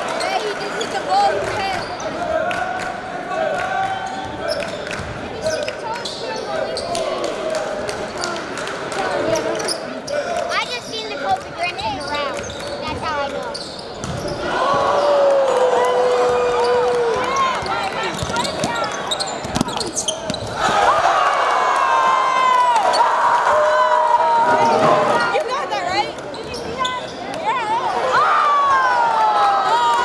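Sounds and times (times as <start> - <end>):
voices of players and crowd: 0.0 - 30.0
sneakers squeaking: 4.0 - 7.1, 11.6 - 15.1, 16.6 - 20.9, 24.8 - 27.6.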